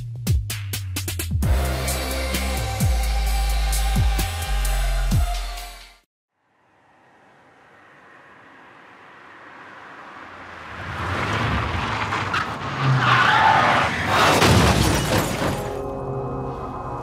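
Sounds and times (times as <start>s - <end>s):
car approaching: 6.4s - 14.1s
tyres skidding: 6.8s - 17.0s
car crash: 7.4s - 17.0s.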